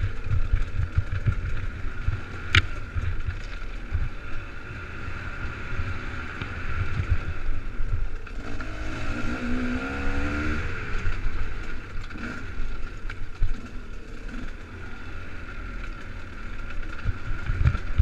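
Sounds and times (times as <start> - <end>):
dirt bike engine revving: 8.3 - 12.7.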